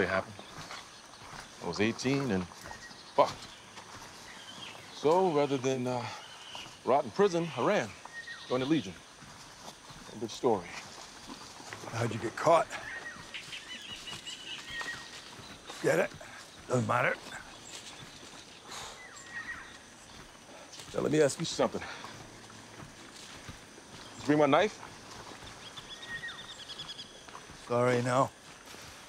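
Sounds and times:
bird trill: 0:00.0 - 0:22.6, 0:24.0 - 0:28.4
birds calling high whistled notes: 0:00.0 - 0:29.0
footsteps on forest floor: 0:00.0 - 0:29.0.

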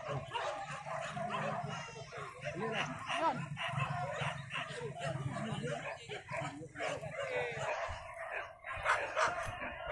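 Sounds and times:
dogs yelping and whining: 0:00.0 - 0:09.9
people's voices: 0:00.0 - 0:09.9.

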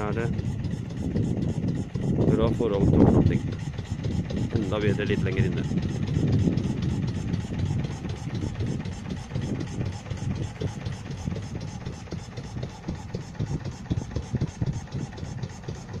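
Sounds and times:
boat engine running steadily: 0:00.0 - 0:16.0.

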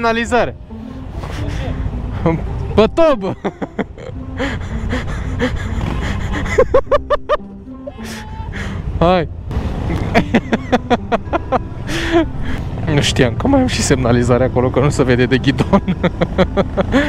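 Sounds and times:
music: 0:00.0 - 0:09.2, 0:09.9 - 0:17.0
motorcycles idling: 0:09.5 - 0:17.0.

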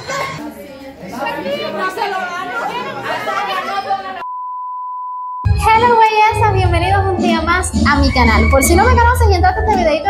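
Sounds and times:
censor beep: 0:04.2 - 0:05.5
music: 0:05.5 - 0:10.0
people talking: 0:05.6 - 0:10.0.

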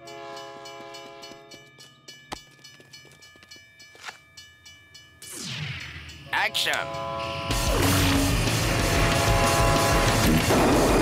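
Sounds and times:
cartoon train horn: 0:00.0 - 0:01.4, 0:06.3 - 0:10.9.

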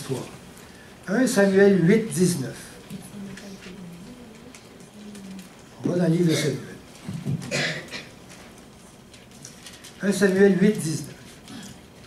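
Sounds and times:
man speaking: 0:01.0 - 0:02.8, 0:05.8 - 0:06.9, 0:10.0 - 0:11.2.

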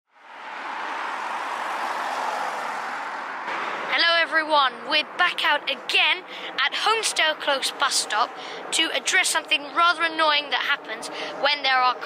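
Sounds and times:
road traffic rushing: 0:00.1 - 0:12.0.

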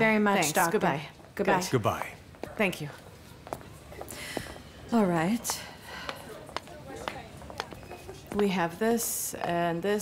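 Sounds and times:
soft footsteps on hard floor: 0:02.0 - 0:08.7.

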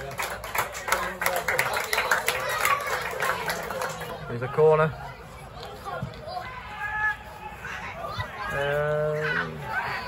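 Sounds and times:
crowd clapping: 0:00.0 - 0:04.4.

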